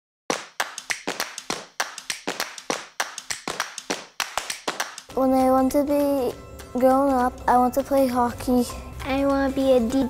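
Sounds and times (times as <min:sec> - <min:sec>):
rhythmic hand claps: 0:00.3 - 0:05.2.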